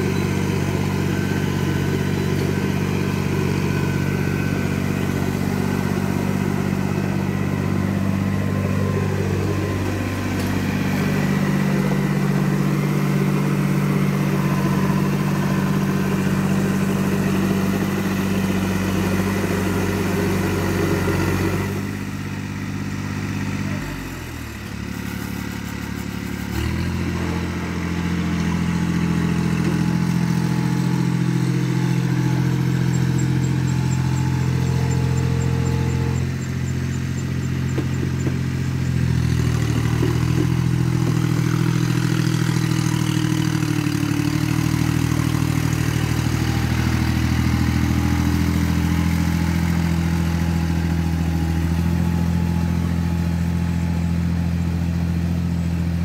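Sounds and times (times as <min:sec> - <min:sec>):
tractor diesel engine running: 0:00.0 - 0:56.0.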